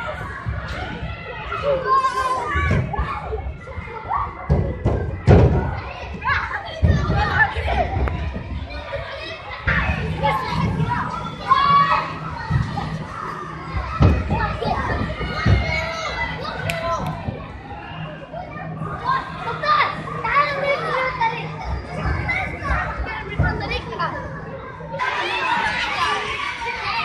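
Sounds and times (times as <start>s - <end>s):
children chattering: 0.0s - 27.0s.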